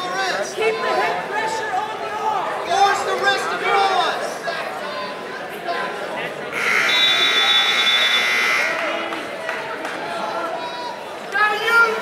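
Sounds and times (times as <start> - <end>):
crowd voices: 0.0 - 12.0
electric scoreboard buzzer: 6.5 - 8.9.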